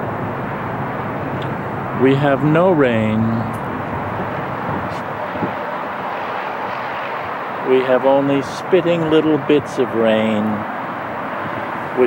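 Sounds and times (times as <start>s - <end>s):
distant traffic roar: 0.0s - 12.0s.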